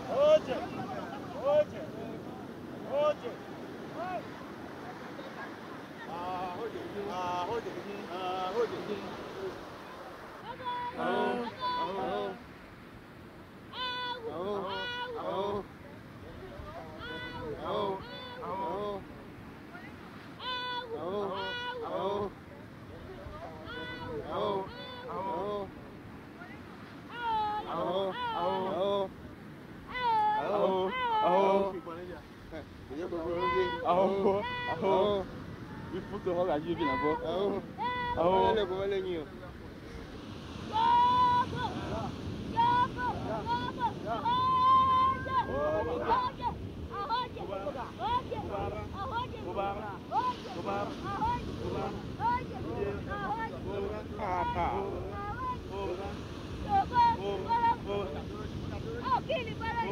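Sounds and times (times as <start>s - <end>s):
fishermen singing together: 0.0s - 39.0s, 39.6s - 59.9s
surf washing on beach: 0.0s - 59.9s
men shouting: 10.5s - 12.5s, 13.8s - 15.7s, 16.7s - 19.0s, 20.4s - 22.4s, 23.4s - 25.7s, 27.2s - 29.1s, 29.9s - 31.9s, 33.0s - 38.8s, 40.6s - 58.4s.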